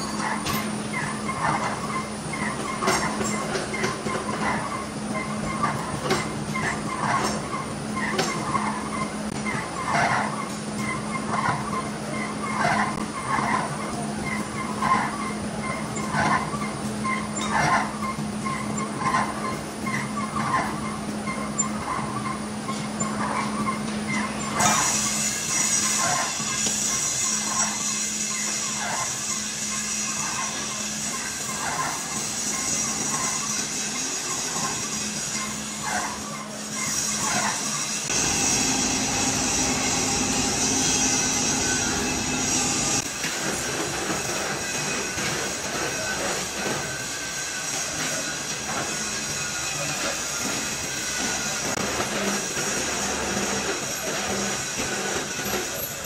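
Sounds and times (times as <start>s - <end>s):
lathe motor hum: 24.4s - 47.6s
regular scraping of lathe: 24.4s - 55.9s.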